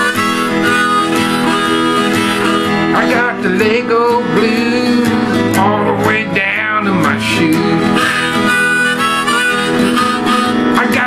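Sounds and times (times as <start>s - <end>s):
harmonica bending notes: 0.0s - 11.0s
strummed acoustic guitar: 0.0s - 11.0s.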